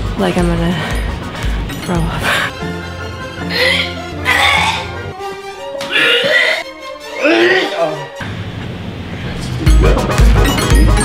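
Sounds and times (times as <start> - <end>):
background music with bass: 0.0 - 8.3, 9.2 - 11.0
man gagging and retching: 3.5 - 5.1.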